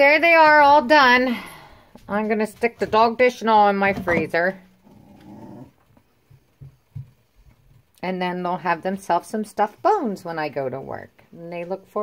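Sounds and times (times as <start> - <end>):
dog growling: 4.8 - 5.9
soft thumps: 5.9 - 7.9.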